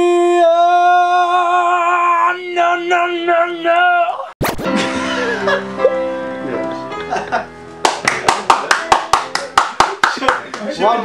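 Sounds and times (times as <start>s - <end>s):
hands clapping rhythmically: 7.8s - 11.0s.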